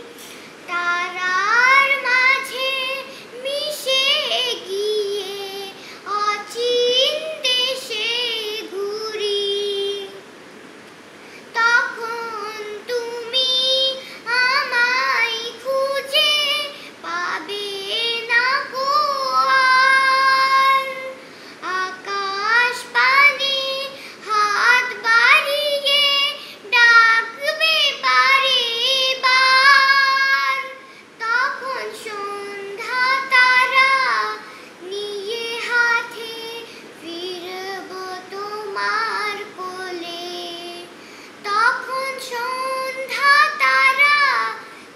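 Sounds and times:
girl singing unaccompanied: 0.0 - 44.9.

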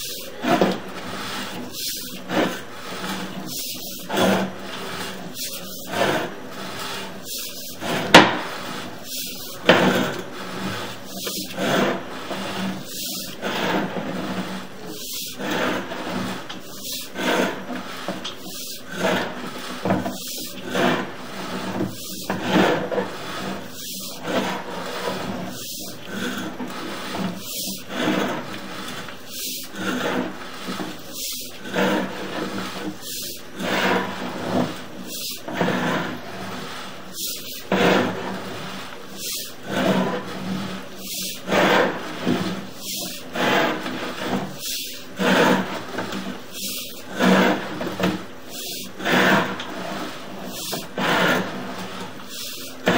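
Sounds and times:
cable scraping through sewer pipe: 0.0 - 52.9.

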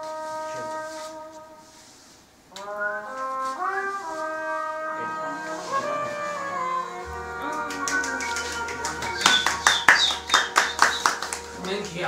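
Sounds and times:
music playing: 4.8 - 12.0
hands clapping in rhythm: 7.4 - 12.0.

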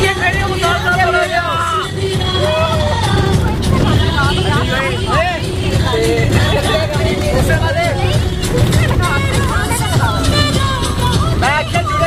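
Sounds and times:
bus engine rumble: 0.0 - 12.0
voices whooping and shouting: 1.5 - 3.4.

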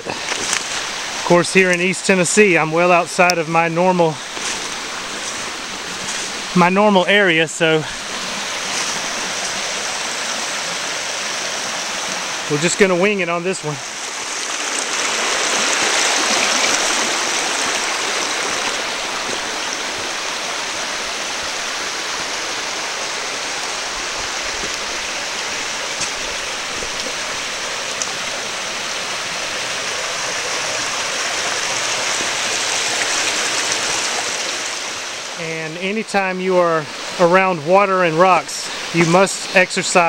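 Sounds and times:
water flowing over rocks: 0.0 - 40.0.

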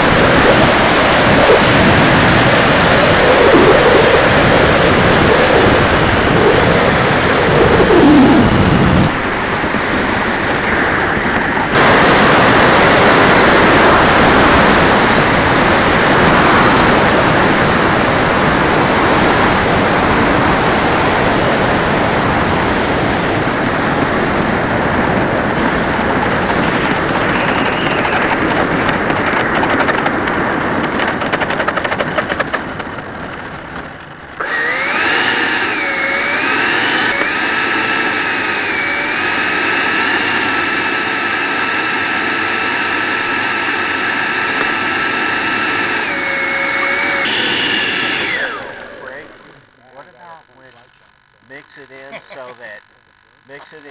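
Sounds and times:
high electric fan whine: 0.0 - 53.9
rush of air and fan noise: 0.0 - 53.9.

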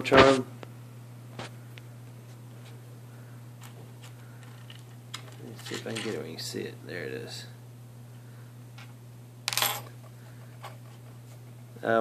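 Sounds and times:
earring clattering on tabletop: 9.5 - 10.0.

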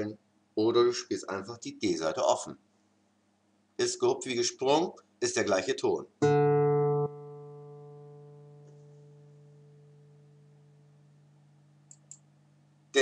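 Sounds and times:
acoustic guitar note ringing: 6.2 - 11.0.

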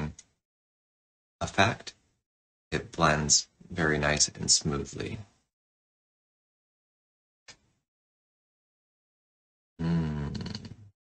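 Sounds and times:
man humming: 9.8 - 10.8.

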